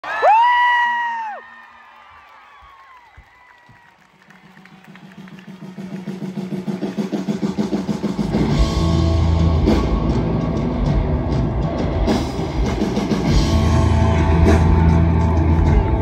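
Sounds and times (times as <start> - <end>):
person whooping scream: 0.0 - 1.6
crowd noise: 0.0 - 16.0
band intro music with pulsing beat: 4.9 - 16.0.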